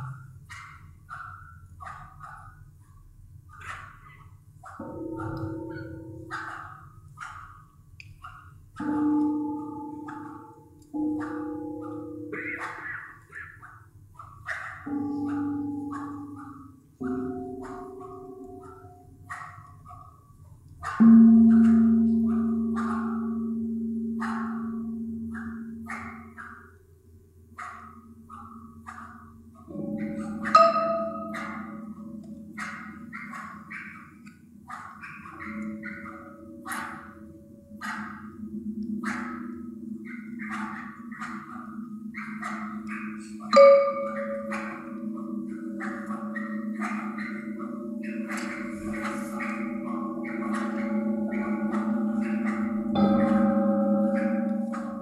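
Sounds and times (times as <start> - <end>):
high-pitched metal percussion: 28.2 - 34.3, 35.0 - 55.0
deep gong strokes: 42.8 - 55.0.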